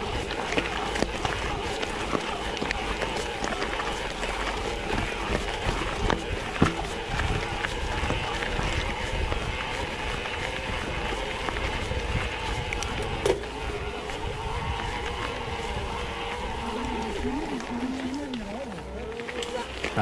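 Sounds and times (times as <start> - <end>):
tyres crunching over gravel: 0.0 - 20.0
wind rumbling on microphone: 0.0 - 20.0.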